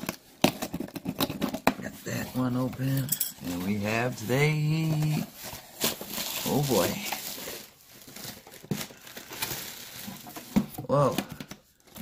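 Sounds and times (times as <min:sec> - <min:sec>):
cardboard and plastic wrap rustling: 0:00.0 - 0:12.0.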